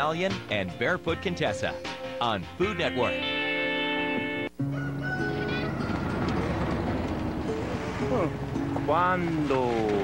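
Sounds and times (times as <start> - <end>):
engine rough rumble: 5.2 - 10.0.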